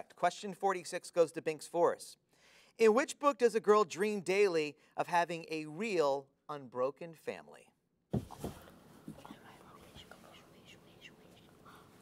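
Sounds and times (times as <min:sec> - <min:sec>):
boys whispering: 0:09.1 - 0:12.0.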